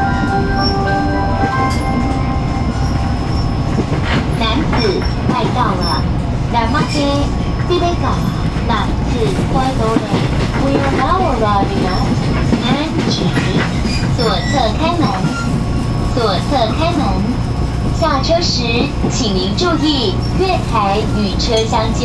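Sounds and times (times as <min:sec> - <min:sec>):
train wheels rumbling: 0:00.0 - 0:22.0
recorded announcement voice: 0:04.2 - 0:15.4, 0:16.1 - 0:17.4, 0:18.0 - 0:22.0.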